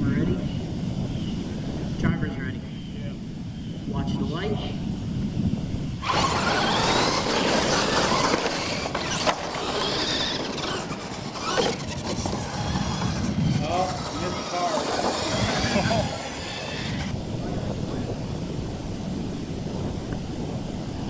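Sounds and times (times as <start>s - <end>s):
tyre and drivetrain noise: 5.2s - 18.0s
toy truck motors whining: 6.0s - 17.2s.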